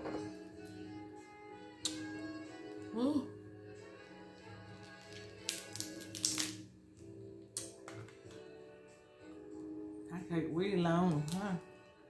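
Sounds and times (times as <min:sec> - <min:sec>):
soft background music: 0:00.0 - 0:12.0
crab shell cracking: 0:04.8 - 0:06.7.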